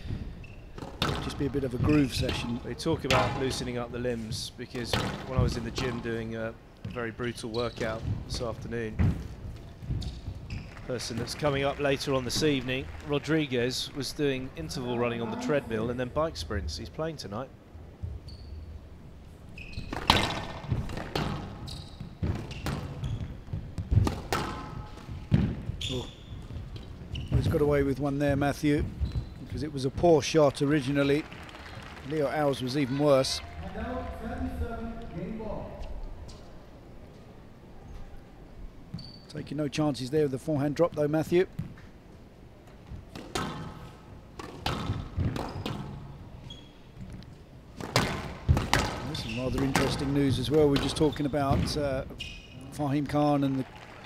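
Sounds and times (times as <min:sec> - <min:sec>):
shoes squeaking on court floor: 0:00.0 - 0:11.5, 0:18.0 - 0:32.0, 0:38.8 - 0:39.6, 0:40.9 - 0:53.5
squash ball knocks: 0:00.8 - 0:01.9, 0:22.2 - 0:25.8, 0:44.4 - 0:45.8, 0:47.8 - 0:50.1.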